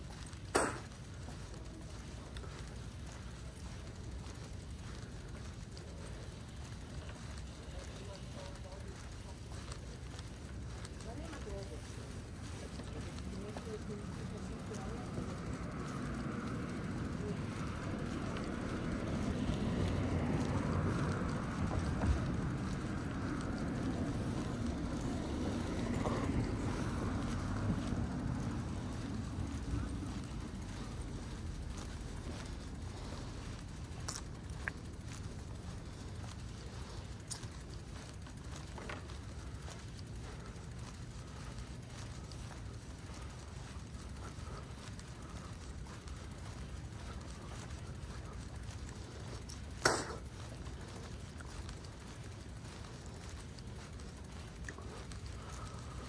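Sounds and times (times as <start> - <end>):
steady low rumble: 0.0 - 56.0
car passing: 10.2 - 56.0.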